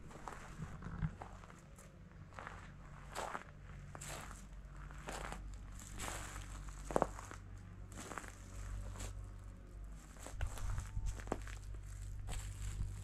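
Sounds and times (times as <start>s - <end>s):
footsteps on dry grass: 0.0s - 13.0s.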